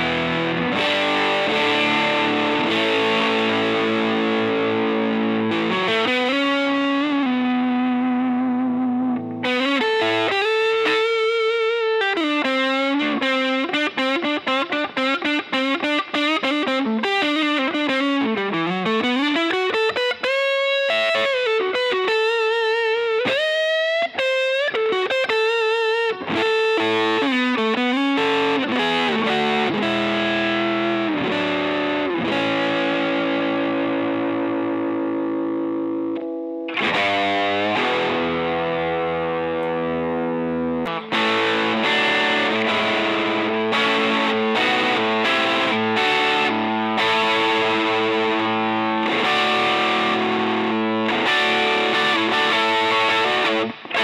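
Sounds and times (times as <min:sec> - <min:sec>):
overdriven electric guitar: 0:00.0 - 0:54.0.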